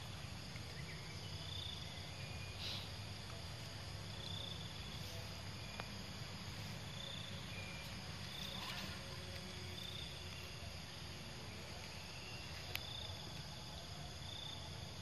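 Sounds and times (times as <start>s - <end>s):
insects chirping: 0.0s - 15.0s.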